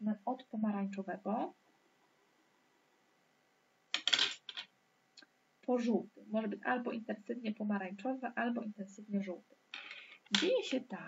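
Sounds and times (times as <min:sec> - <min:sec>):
plastic pens clattering on desk: 0:04.0 - 0:04.7, 0:09.8 - 0:10.6.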